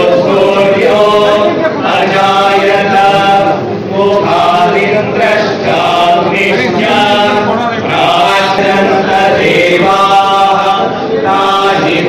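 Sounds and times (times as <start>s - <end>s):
men chanting a hymn: 0.0s - 12.0s.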